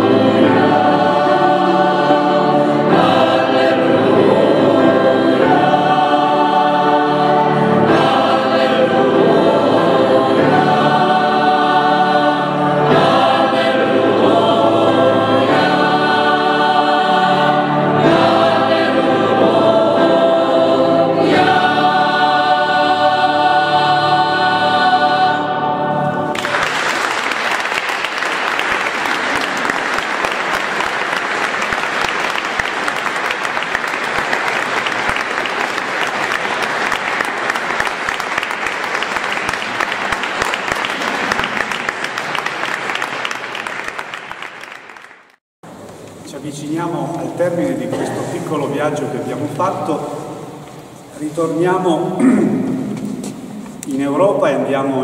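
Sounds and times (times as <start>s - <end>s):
mixed choir singing: 0.0s - 43.3s
audience applause: 26.3s - 45.4s.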